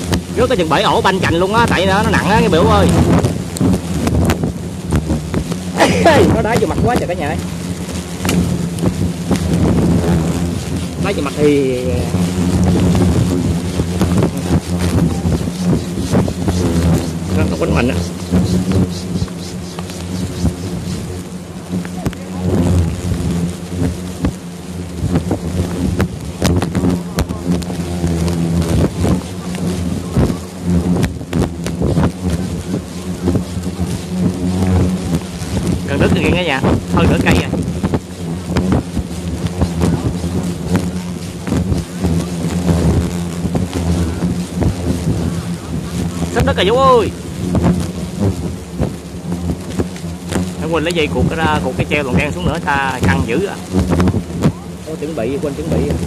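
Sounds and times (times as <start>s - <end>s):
hornets buzzing: 0.0s - 56.0s
knocks and crackles: 0.0s - 56.0s.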